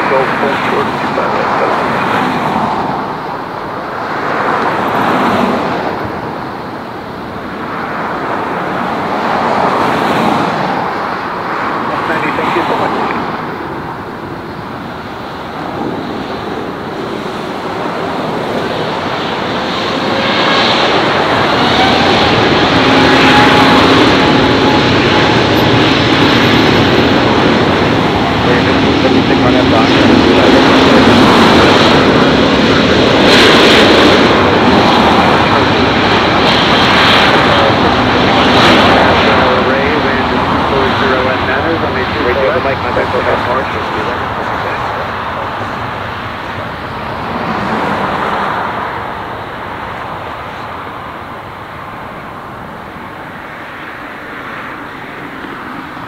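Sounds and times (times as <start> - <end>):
jet engines roaring for takeoff: 0.0 - 56.0.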